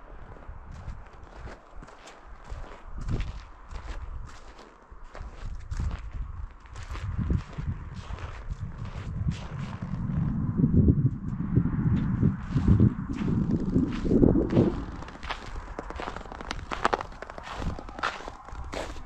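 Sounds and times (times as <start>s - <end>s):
footsteps on snow: 0.2s - 10.2s, 12.0s - 19.0s.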